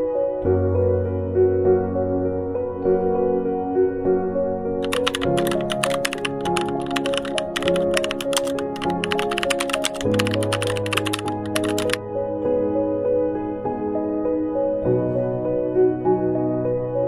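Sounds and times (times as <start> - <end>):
soft background music: 0.0 - 17.0
keyboard typing clicks: 4.8 - 12.0.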